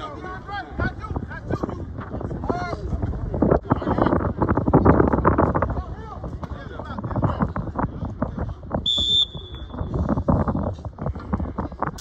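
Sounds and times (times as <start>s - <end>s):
shrill whistle blast: 8.9s - 9.9s.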